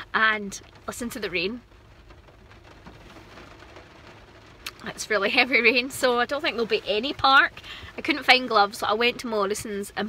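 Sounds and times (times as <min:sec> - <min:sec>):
heavy rain on a car: 0:00.0 - 0:10.0.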